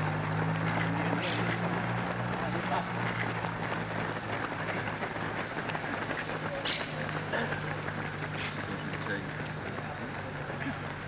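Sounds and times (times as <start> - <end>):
runners' footsteps on asphalt: 0.0 - 11.0.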